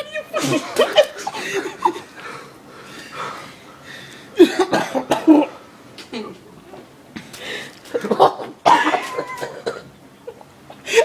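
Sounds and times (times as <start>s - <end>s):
person coughing hard: 4.4s - 5.6s, 8.0s - 9.9s.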